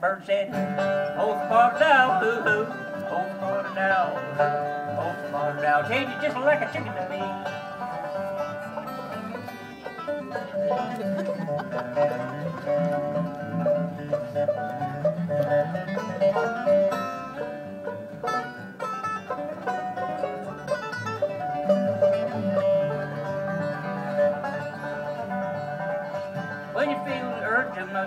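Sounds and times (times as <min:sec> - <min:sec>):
bluegrass string band playing: 0:00.0 - 0:28.0
person singing: 0:01.0 - 0:07.4, 0:26.7 - 0:28.0.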